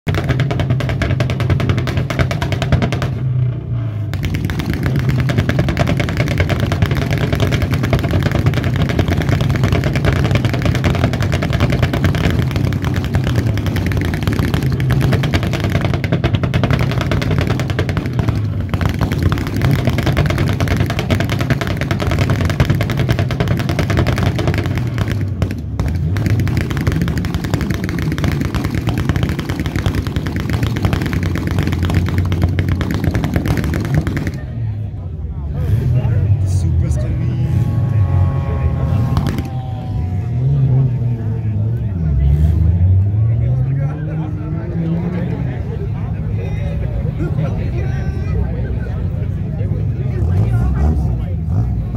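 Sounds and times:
car engines revving: 0.0 - 51.9
rapid crackling rattle: 4.1 - 34.5.

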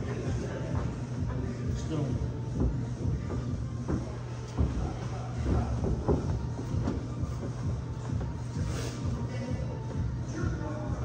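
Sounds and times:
background music with low bass: 0.0 - 11.0
dull thumps and knocks: 2.5 - 8.4.

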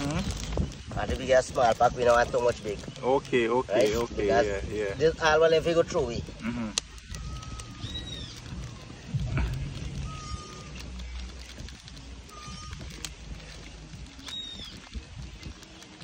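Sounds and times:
bird high arching call: 7.1 - 9.0, 9.9 - 11.0, 14.2 - 14.9.

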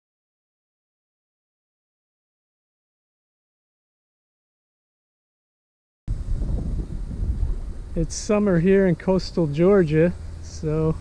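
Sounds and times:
wind buffeting microphone: 6.1 - 11.0.

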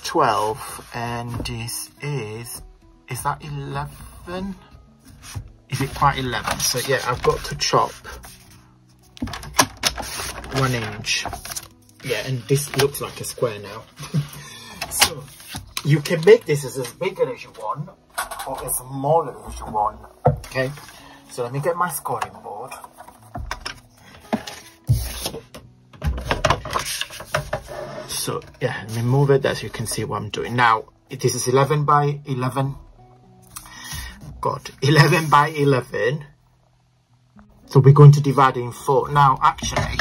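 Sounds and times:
paper rustling: 5.0 - 17.6, 22.2 - 30.0.

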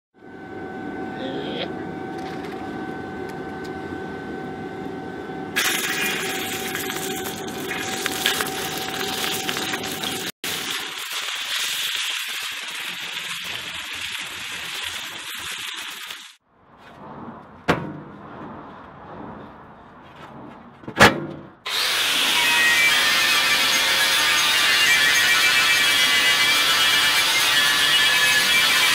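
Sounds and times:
brief high tone: 0.9 - 1.8
gas wok burner roaring: 5.6 - 16.4
sausages sizzling in hot oil: 5.6 - 16.4.

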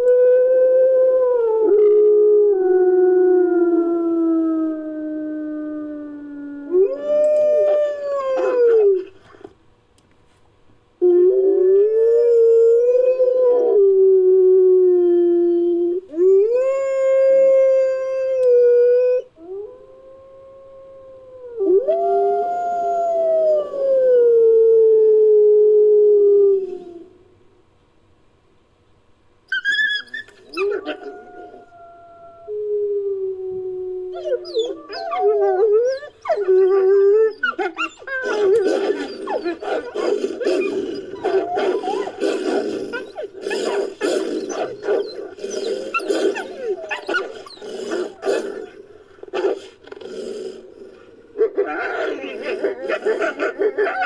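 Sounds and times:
wolf-like howling: 29.5 - 48.8, 51.4 - 54.0.

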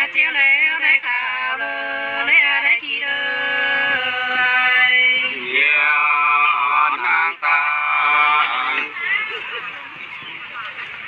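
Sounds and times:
women singing unaccompanied: 0.0 - 9.0.

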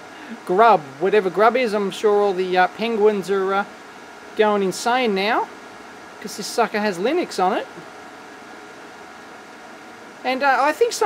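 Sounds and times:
computer cooling fans rushing: 0.0 - 11.0
faint steady hum: 0.0 - 11.0.

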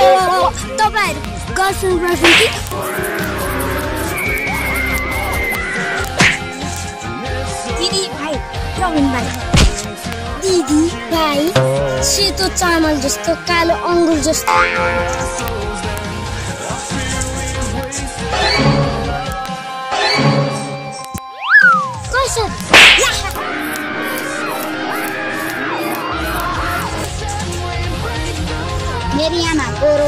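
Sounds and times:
background music: 0.0 - 30.0
whip-like swish: 2.2 - 3.0, 6.0 - 6.6, 22.7 - 26.5
boy speaking: 10.4 - 13.1, 22.1 - 23.4.

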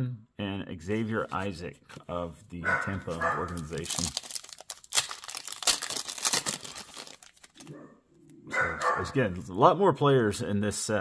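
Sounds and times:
foil wrapper tearing and crinkling: 3.0 - 7.7.

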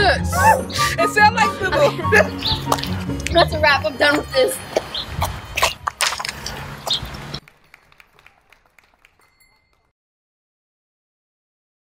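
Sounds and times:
outdoor ambient noise: 0.0 - 9.8.

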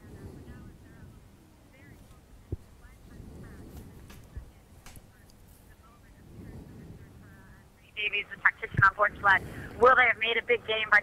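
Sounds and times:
faint wind and water: 0.0 - 11.0
commentator speaking: 1.8 - 11.0.

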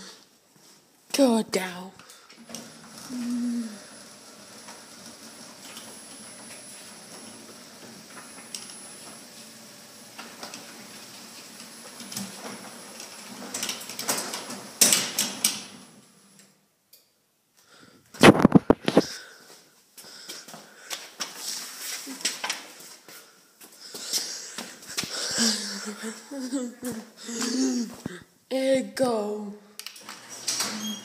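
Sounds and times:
garage door opener motor hum: 2.4 - 16.6, 30.0 - 31.0
garage door rattling: 12.6 - 16.0.

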